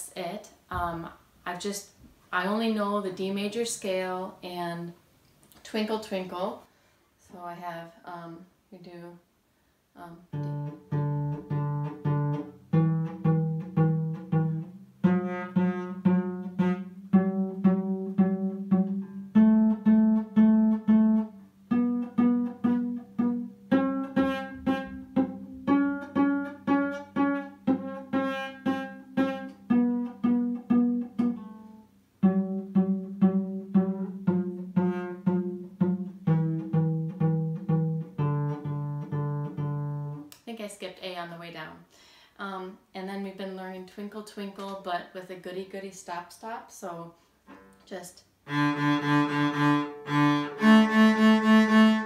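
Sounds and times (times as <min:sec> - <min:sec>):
cello plucked pizzicato: 0:10.1 - 0:40.4, 0:48.4 - 0:52.0.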